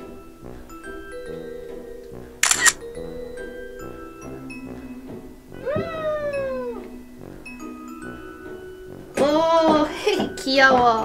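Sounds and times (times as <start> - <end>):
light background music: 0.0 - 11.0
meow-like call: 5.6 - 6.9.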